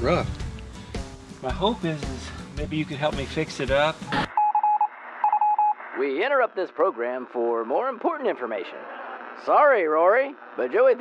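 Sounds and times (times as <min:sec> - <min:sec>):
radio-like hiss: 0:03.4 - 0:11.0
short electronic beeps: 0:04.1 - 0:05.8.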